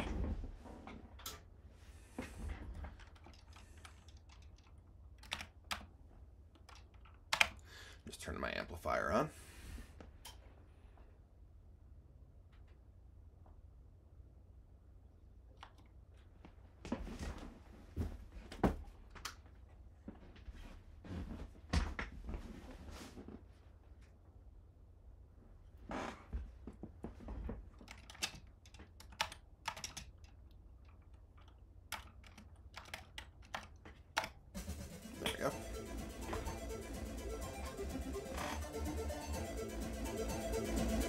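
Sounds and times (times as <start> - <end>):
typing on computer keyboard: 3.0 - 5.9, 6.6 - 7.6, 27.8 - 34.4.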